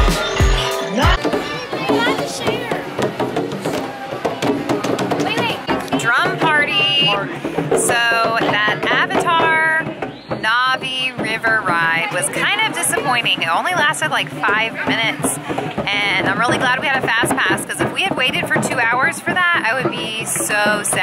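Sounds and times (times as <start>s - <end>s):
children striking hand drums: 0.0s - 21.0s
woman's voice: 5.3s - 21.0s.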